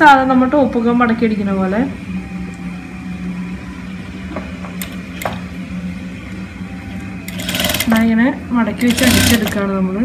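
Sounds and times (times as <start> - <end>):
sewing machine motor humming: 7.2 - 8.2, 8.8 - 9.7.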